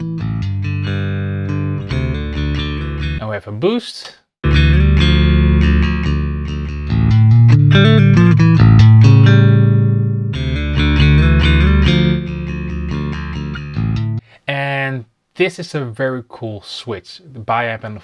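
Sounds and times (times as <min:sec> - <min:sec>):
electric bass guitar line: 0:00.0 - 0:03.2, 0:04.4 - 0:14.2.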